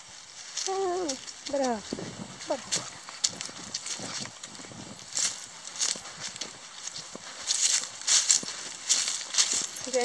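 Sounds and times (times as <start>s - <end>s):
footsteps on leafy dirt path: 0.0s - 10.0s.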